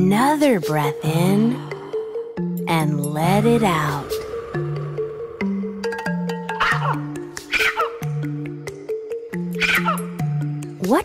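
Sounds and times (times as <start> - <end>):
gentle background music: 0.0 - 11.0
macaw squawking: 6.4 - 8.2, 9.5 - 10.2.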